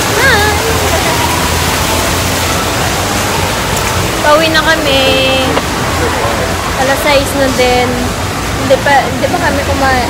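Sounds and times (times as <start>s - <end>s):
fountain water splashing: 0.0s - 10.0s.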